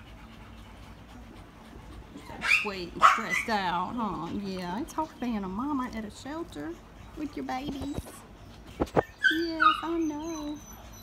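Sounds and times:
dog panting softly: 0:00.0 - 0:11.0.

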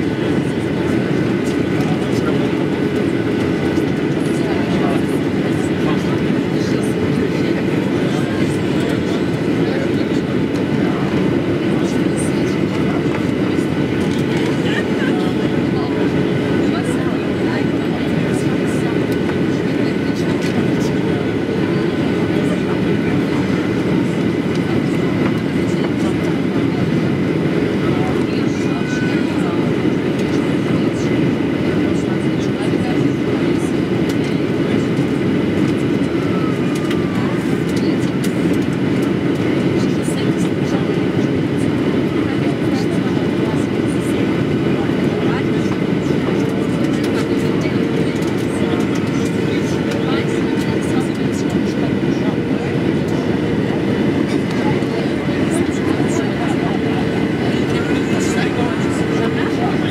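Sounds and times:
airplane cabin rumble: 0:00.0 - 0:59.9.

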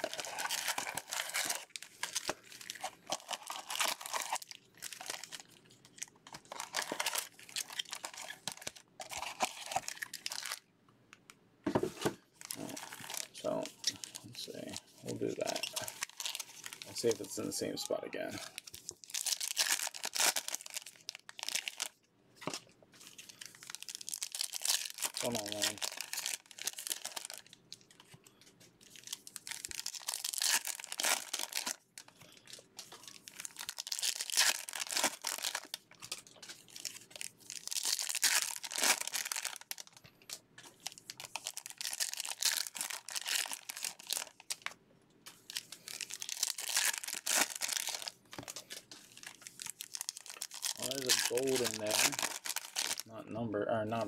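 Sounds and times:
foil wrappers tearing and crinkling: 0:00.0 - 0:10.6, 0:12.4 - 0:17.5, 0:18.4 - 0:22.0, 0:23.0 - 0:28.0, 0:28.9 - 0:32.1, 0:32.8 - 0:44.7, 0:45.3 - 0:53.1.

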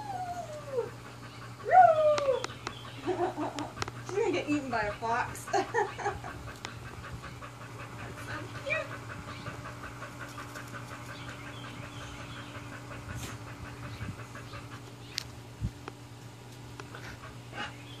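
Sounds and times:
steady low hum: 0:00.0 - 0:18.0
dog panting: 0:00.6 - 0:18.0.

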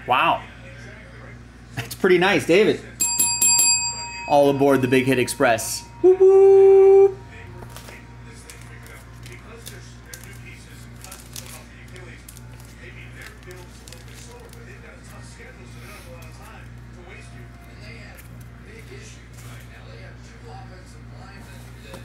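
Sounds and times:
steady low hum: 0:00.0 - 0:22.0
trading cards being handled: 0:07.6 - 0:15.2.

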